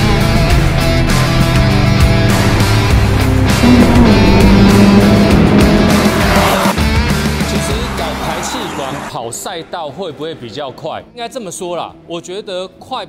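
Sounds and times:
loud rock music: 0:00.0 - 0:09.1
car engine running hard: 0:02.3 - 0:06.8.

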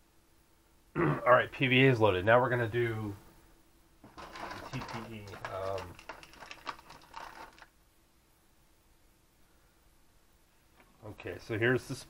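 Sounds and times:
plastic bag crinkling: 0:04.1 - 0:07.7.

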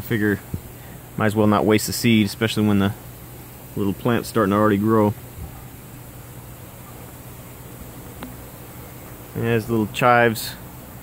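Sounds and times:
even hiss: 0:00.0 - 0:11.0
faint click: 0:08.2 - 0:08.4.

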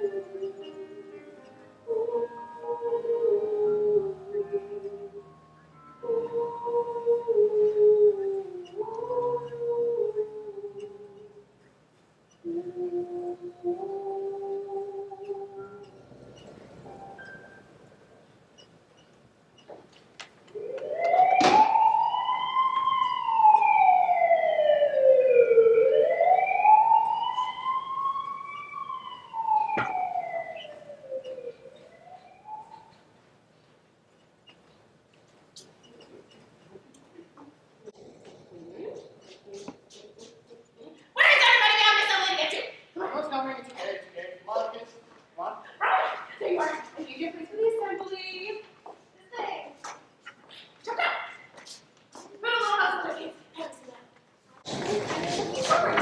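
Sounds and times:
siren wailing: 0:20.5 - 0:33.1.

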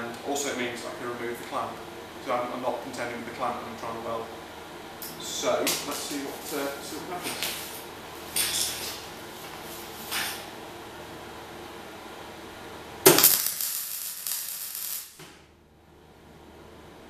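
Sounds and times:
welder arc crackling: 0:05.0 - 0:10.5, 0:13.0 - 0:15.2.

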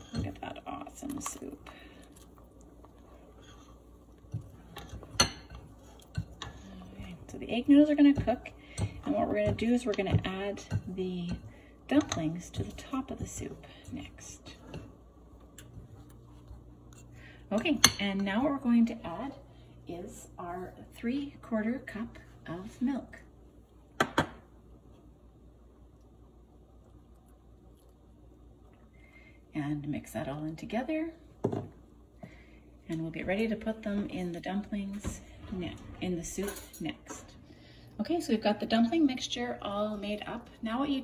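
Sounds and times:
spoon stirring soup in pot: 0:00.0 - 0:18.0.

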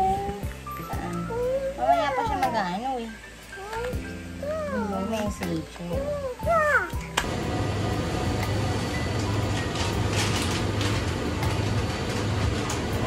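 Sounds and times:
background music: 0:00.0 - 0:13.0
toddler vocalizing: 0:01.3 - 0:02.5, 0:03.6 - 0:05.1, 0:06.0 - 0:07.0
noisy shop ambience: 0:06.8 - 0:13.0.

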